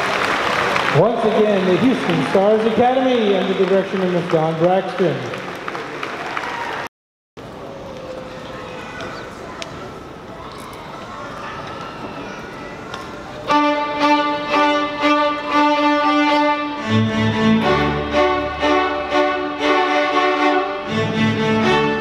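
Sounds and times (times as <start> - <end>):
violins sustained notes: 13.4 - 22.0
cellos and double basses: 13.5 - 22.0.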